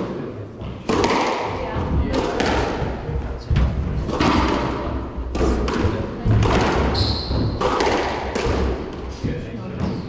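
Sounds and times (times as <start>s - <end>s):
squash ball hits: 0.6s - 10.0s
shoe squeak on wooden floor: 6.9s - 7.6s.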